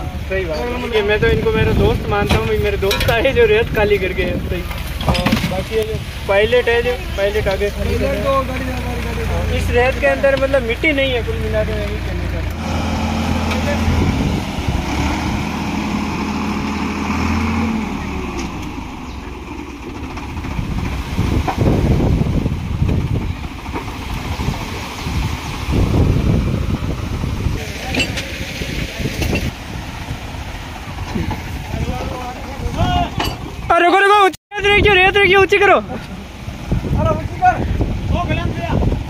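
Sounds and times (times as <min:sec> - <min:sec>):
tractor engine drone: 0:00.0 - 0:33.7
sand sliding off trailer: 0:27.6 - 0:29.6.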